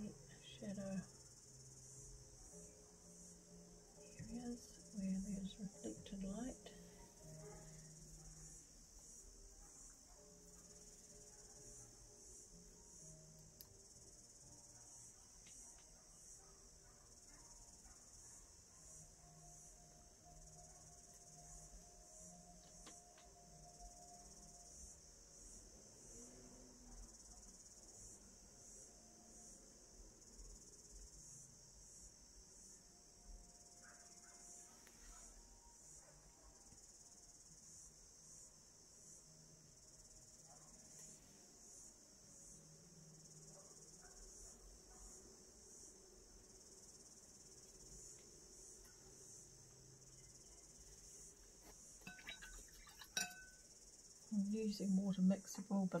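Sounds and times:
insects chirring: 0.0s - 56.0s.

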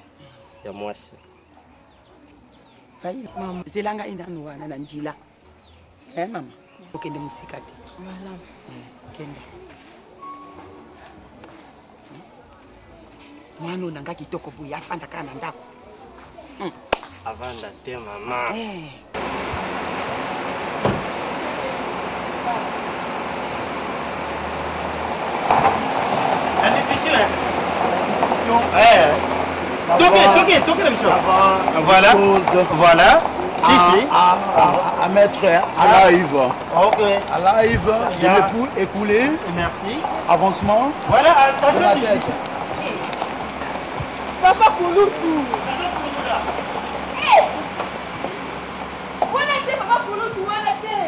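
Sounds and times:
faint voices: 5.9s - 19.2s
voices calling out: 6.3s - 51.0s
car engine idling: 19.1s - 51.0s.

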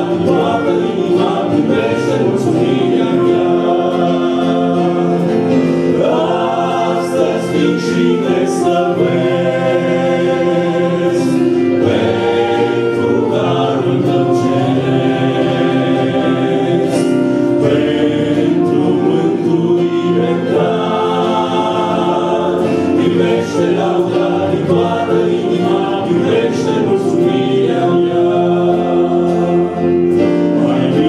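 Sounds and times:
choir singing a hymn: 0.0s - 31.0s.

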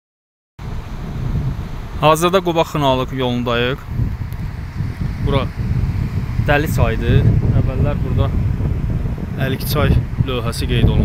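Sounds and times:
wind buffeting microphone: 0.6s - 11.0s.

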